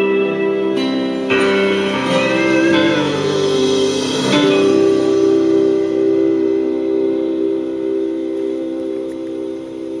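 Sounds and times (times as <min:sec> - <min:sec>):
guitar chord ringing: 0:00.0 - 0:10.0.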